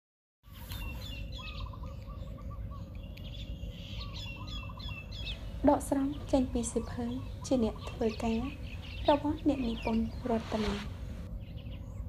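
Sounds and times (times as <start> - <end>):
birds chirping: 0.4 - 12.0
low background noise: 0.5 - 12.0.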